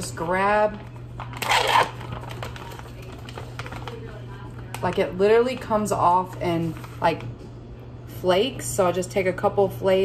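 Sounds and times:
steady low hum: 0.0s - 10.0s
plastic pouch crinkling: 1.2s - 5.0s.

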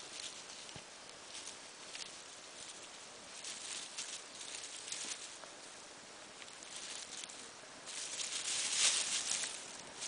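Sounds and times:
rustling of dry leaves and twigs: 0.0s - 10.0s.

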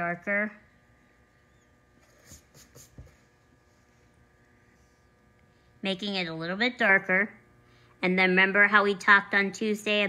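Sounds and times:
crayon scratching on paper: 2.0s - 3.2s.

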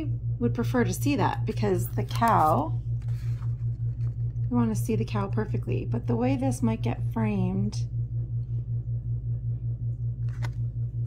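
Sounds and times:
pulsing low hum: 0.0s - 11.0s.

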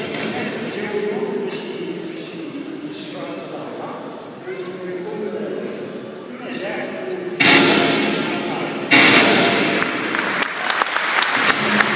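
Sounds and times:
crowd applauding: 9.7s - 11.9s.

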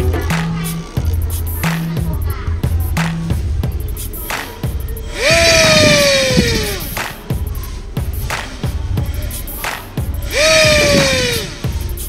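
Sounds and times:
small motor with propeller whining: 5.2s - 7.0s, 10.3s - 11.6s.

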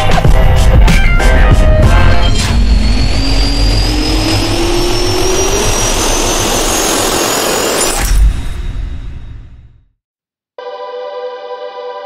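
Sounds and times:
jet engine spooling up: 1.2s - 9.4s.

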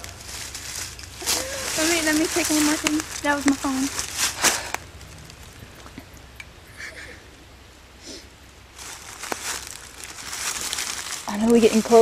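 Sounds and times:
footsteps in dry leaves: 0.0s - 5.6s, 8.7s - 12.0s.

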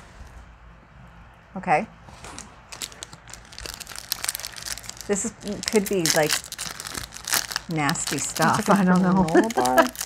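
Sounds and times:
wrapper crinkling: 2.4s - 10.0s.

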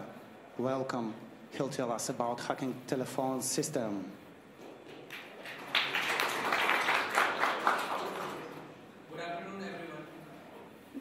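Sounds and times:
audience applauding: 5.0s - 8.7s.

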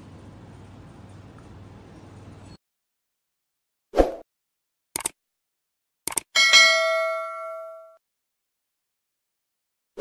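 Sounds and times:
notification bell ding: 6.4s - 8.0s.

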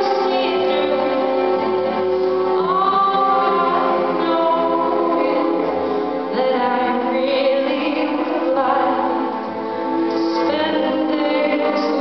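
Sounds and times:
string orchestra playing: 0.0s - 12.0s.

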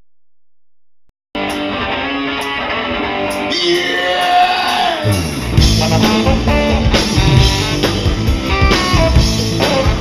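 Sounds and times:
live rock band: 1.4s - 10.0s
loud electric guitars: 1.4s - 10.0s.

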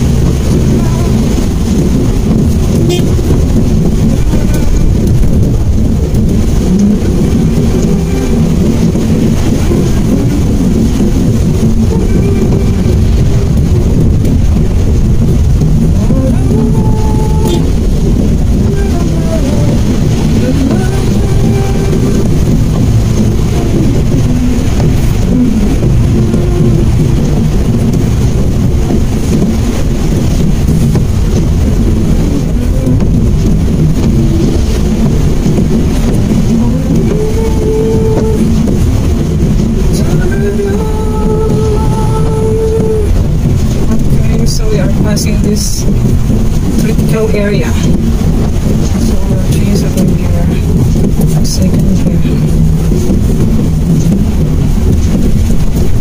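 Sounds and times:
car engine rumble: 0.0s - 56.0s
tyres on wet road: 0.0s - 56.0s.

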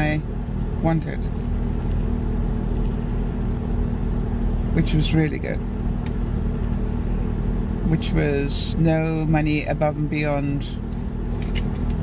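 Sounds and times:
car engine rumble: 0.0s - 12.0s
constant low hum: 0.0s - 12.0s
road noise inside car: 0.0s - 12.0s.

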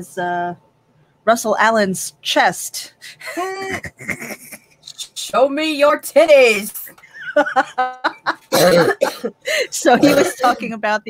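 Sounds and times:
woman laughing: 3.1s - 4.7s, 7.1s - 10.8s.

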